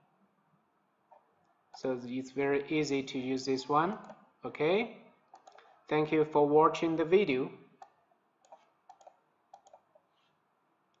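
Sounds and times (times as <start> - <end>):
computer mouse clicks: 3.9 - 4.2, 5.3 - 5.8, 7.8 - 11.0.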